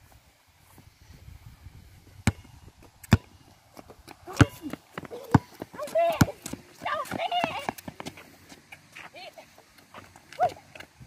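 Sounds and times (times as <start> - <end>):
basketball bouncing: 2.2 - 8.1
footsteps on court: 2.3 - 11.0
boys shouting: 4.3 - 7.8.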